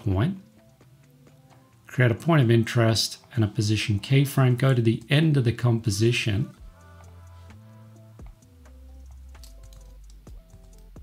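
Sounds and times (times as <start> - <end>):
soft background music: 0.0 - 11.0
computer keyboard clicks: 9.0 - 11.0.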